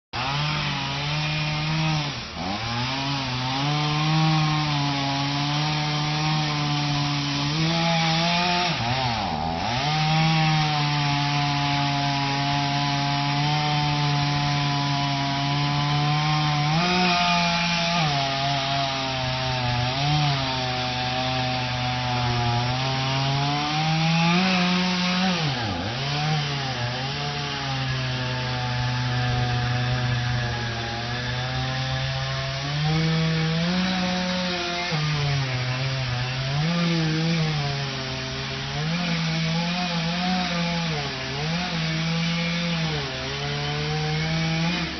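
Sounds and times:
chainsaw cutting tree: 0.2s - 44.9s.

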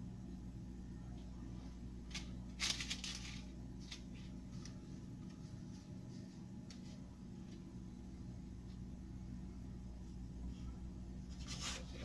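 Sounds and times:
low steady hum: 0.0s - 12.0s
parchment paper crinkling: 2.1s - 5.4s.

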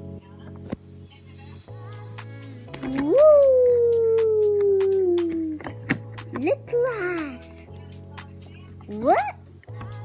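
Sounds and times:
background music: 0.0s - 10.0s
child's drawn-out vocal call: 2.9s - 5.6s.

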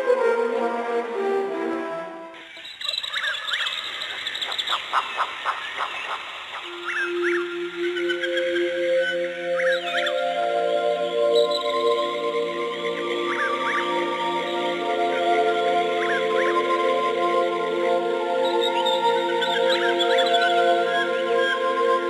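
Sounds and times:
bird chirping: 2.4s - 21.6s.

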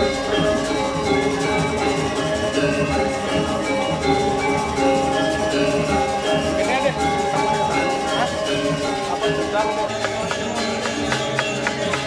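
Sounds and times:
ringing metallophone tones: 0.0s - 12.0s
steady percussion: 0.0s - 12.0s.

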